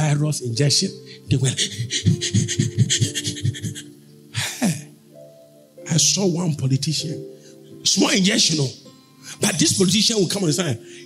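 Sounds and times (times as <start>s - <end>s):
man laughing in breathy bursts: 1.4s - 4.9s.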